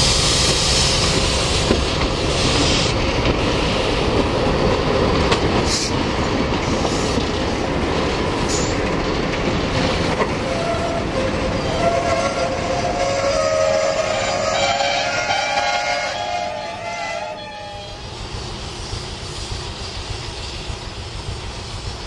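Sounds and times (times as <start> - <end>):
diesel locomotive engine rumble: 0.0 - 22.0.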